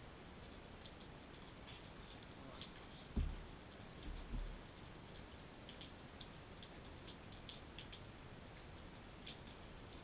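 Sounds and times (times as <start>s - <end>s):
faint drips and patters: 0.0s - 10.0s
light rain: 0.0s - 10.0s
low dull thumps: 3.1s - 4.6s.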